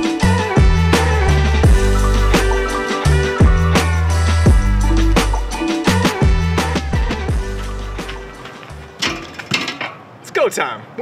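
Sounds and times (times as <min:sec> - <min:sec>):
background music: 0:00.0 - 0:09.5
feet thumping on steel ring: 0:08.0 - 0:10.0.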